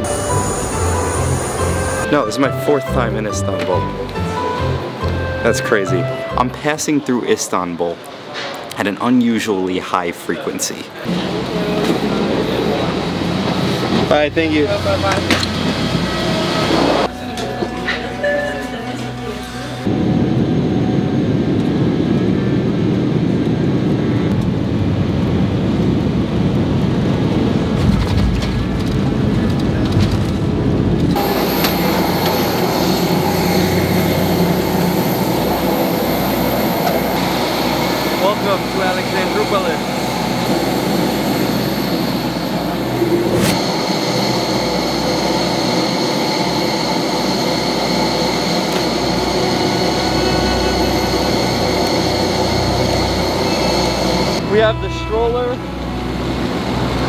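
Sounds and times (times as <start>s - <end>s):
jet engine high whine: 0.0s - 2.8s, 10.8s - 57.0s
aircraft cabin rumble: 19.5s - 57.0s.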